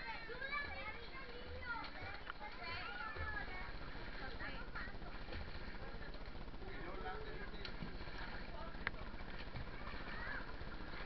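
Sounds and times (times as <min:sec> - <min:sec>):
children shouting and chattering: 0:00.0 - 0:03.7, 0:09.6 - 0:11.0.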